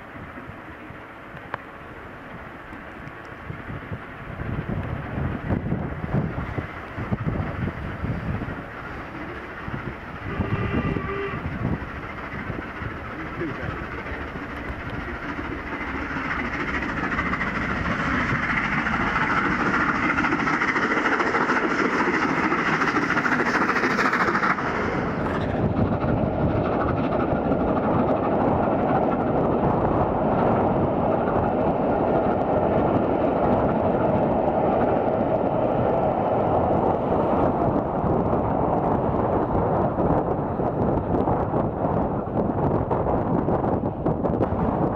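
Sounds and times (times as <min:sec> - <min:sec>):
steam locomotive working hard: 0:00.0 - 0:44.9
wind on microphone: 0:02.3 - 0:44.9
train whistle: 0:10.1 - 0:11.7.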